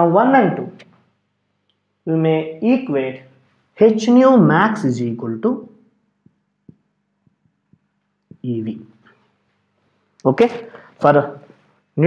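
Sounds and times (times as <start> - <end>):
faint steady hum: 0.0 - 12.0
marker tapping on whiteboard: 6.2 - 8.5.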